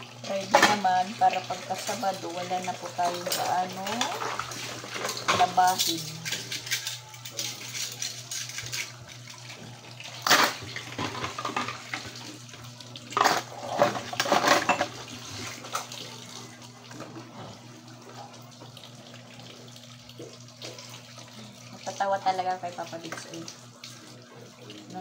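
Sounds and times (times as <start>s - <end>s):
water trickling: 0.0s - 25.0s.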